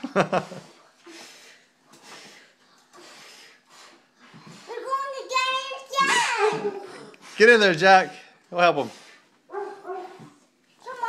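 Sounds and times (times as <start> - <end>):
children's voices: 4.5 - 7.0, 10.8 - 11.0.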